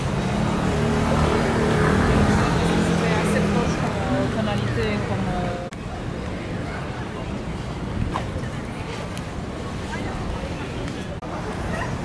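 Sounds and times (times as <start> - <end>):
city street noise: 0.0 - 12.0.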